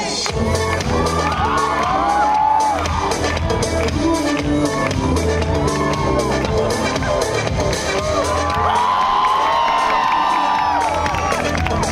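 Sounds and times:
loud dance music: 0:00.0 - 0:11.9
crowd cheering and whooping: 0:00.6 - 0:03.6, 0:05.3 - 0:11.9.

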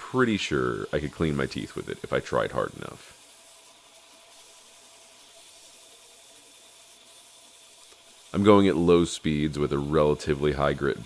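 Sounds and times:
belt grinder sanding wood: 0:00.0 - 0:11.0.

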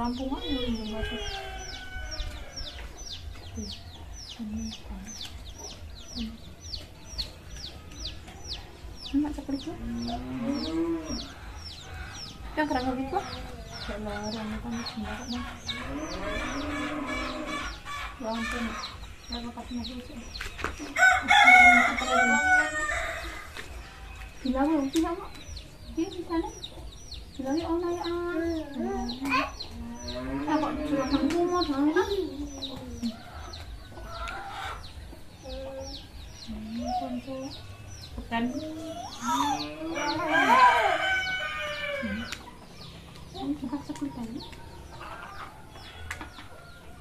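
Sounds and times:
chickens clucking: 0:00.0 - 0:47.0
rooster crowing: 0:00.8 - 0:02.8, 0:21.0 - 0:23.5, 0:39.2 - 0:42.3.

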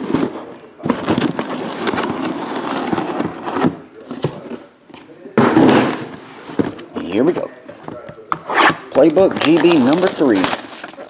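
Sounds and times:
cardboard ripping: 0:08.5 - 0:11.0.

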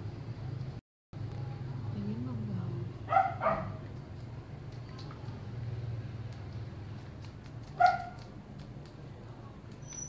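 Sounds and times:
dog barking: 0:03.1 - 0:03.8, 0:07.8 - 0:08.3.

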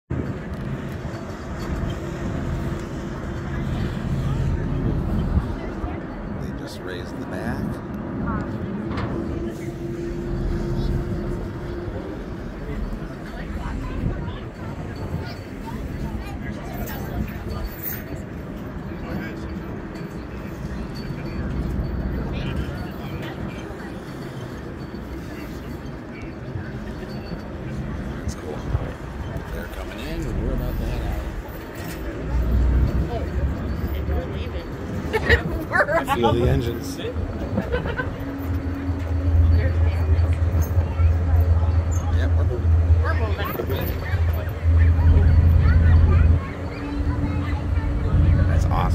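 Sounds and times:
ferry diesel engines rumbling: 0:00.1 - 0:48.9
murmur of people talking: 0:00.1 - 0:48.9.

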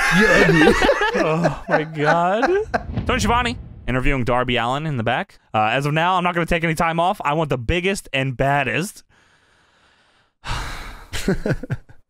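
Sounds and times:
person sighing: 0:10.4 - 0:11.1.

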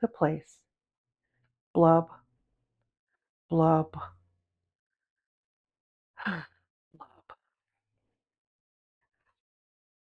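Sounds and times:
woman sighing: 0:06.2 - 0:06.6.

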